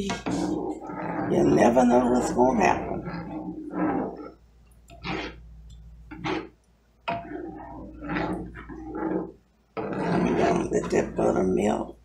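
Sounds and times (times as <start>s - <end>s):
utensil scraping skillet: 0.0s - 12.0s.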